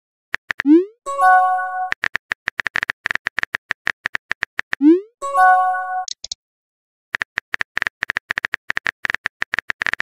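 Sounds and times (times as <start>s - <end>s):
multi-tone chime: 5.2s - 6.1s.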